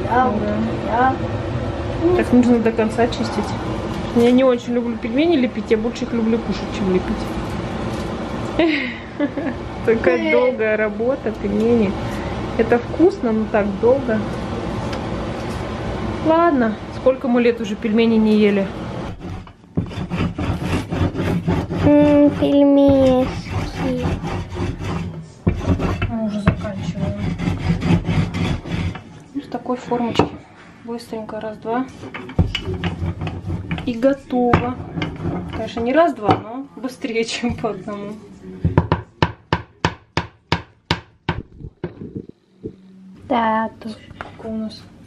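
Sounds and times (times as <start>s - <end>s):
rolling pin scraping dough on metal: 17.6s - 29.9s, 31.2s - 37.8s.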